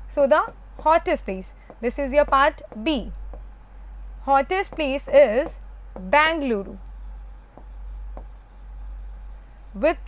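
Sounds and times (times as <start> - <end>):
steady low hum: 0.0 - 10.0
writing strokes on a board: 0.0 - 10.0.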